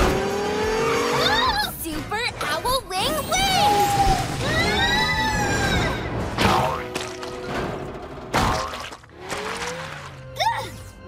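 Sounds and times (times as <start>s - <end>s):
cartoon background music: 0.7s - 11.0s.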